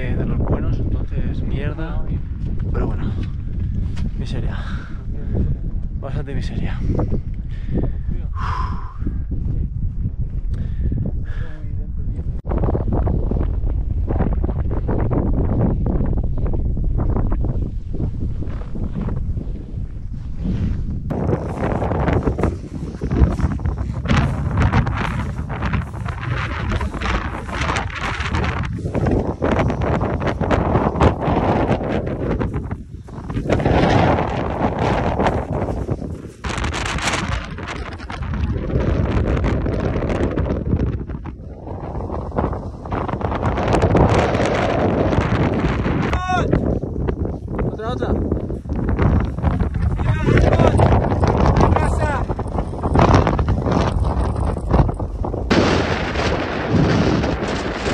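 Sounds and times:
gusting wind buffeting microphone: 0:00.0 - 0:57.9.

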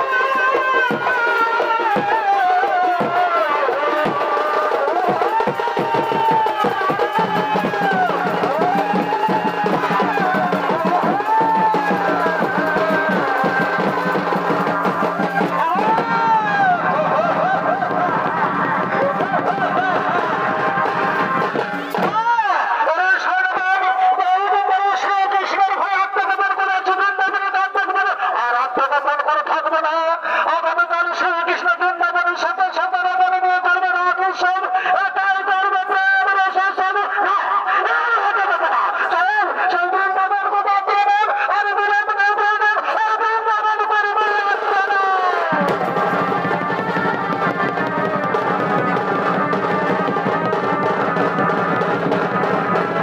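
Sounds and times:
shehnai melody: 0:00.0 - 0:22.2, 0:45.3 - 0:53.0
drums: 0:00.0 - 0:28.8, 0:34.6 - 0:53.0.

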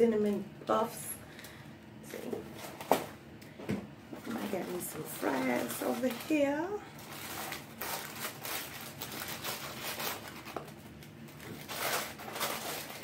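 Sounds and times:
paper wrappers rustling: 0:04.2 - 0:13.0.

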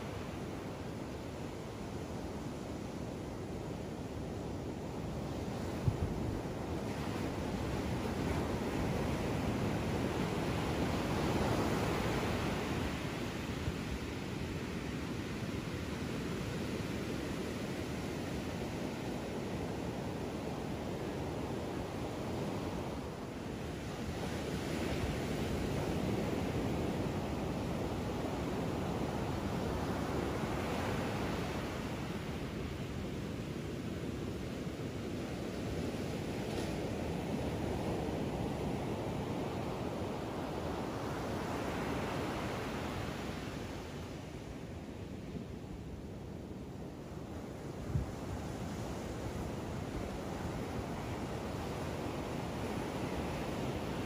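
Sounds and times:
ocean surf breaking on beach: 0:00.0 - 0:54.0.

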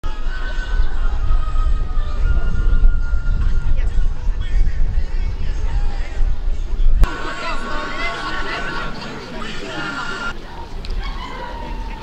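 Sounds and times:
loud uneven low rumble: 0:00.0 - 0:08.6.

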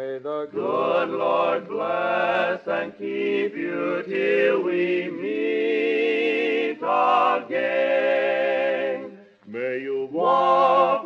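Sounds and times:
male quartet singing in harmony: 0:00.5 - 0:11.0.

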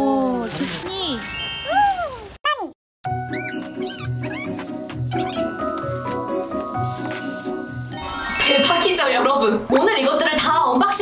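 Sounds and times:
squeaky chirps: 0:03.1 - 0:05.7.

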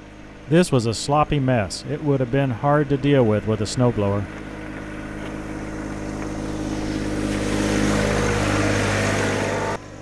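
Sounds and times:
tractor diesel engine running: 0:00.0 - 0:10.0
snow blade scraping pavement: 0:03.6 - 0:10.0.

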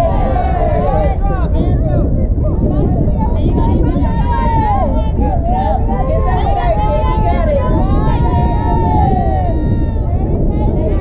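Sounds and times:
players calling out and cheering: 0:00.0 - 0:11.0
steady low rumble: 0:00.0 - 0:11.0.

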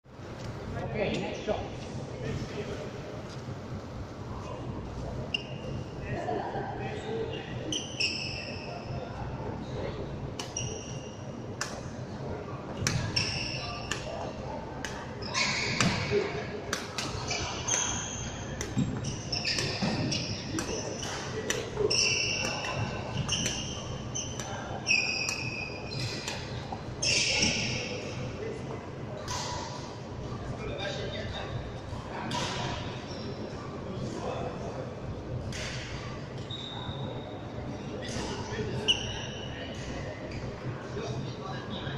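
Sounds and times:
high shoe squeak: 0:05.3 - 0:05.8, 0:07.7 - 0:09.0, 0:10.4 - 0:11.4, 0:12.9 - 0:14.2, 0:15.2 - 0:16.3, 0:17.1 - 0:28.1, 0:36.4 - 0:37.4, 0:38.8 - 0:39.6.

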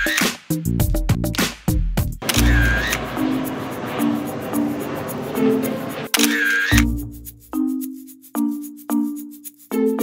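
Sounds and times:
camera shutter sound effect: 0:00.0 - 0:00.4, 0:02.2 - 0:03.3, 0:06.1 - 0:07.0
background music: 0:00.0 - 0:10.0.

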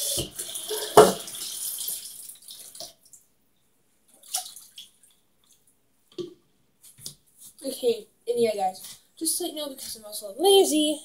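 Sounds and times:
tap water running into sink: 0:00.0 - 0:03.0.

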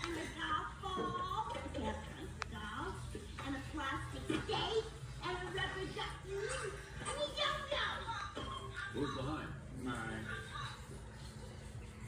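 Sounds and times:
woman speaking through tv speaker: 0:00.0 - 0:09.4.

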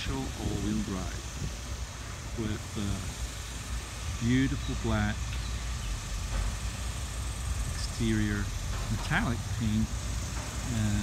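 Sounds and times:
construction work rumble: 0:00.0 - 0:11.0.

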